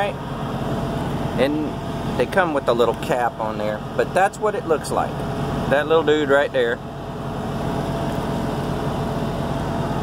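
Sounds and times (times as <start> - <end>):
diesel truck engine idling: 0.0 - 10.0.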